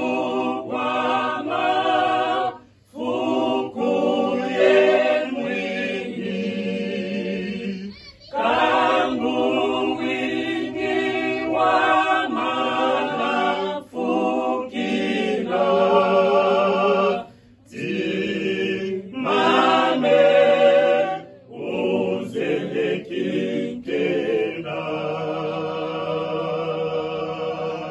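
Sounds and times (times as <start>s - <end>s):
group singing unaccompanied: 0.0s - 27.9s.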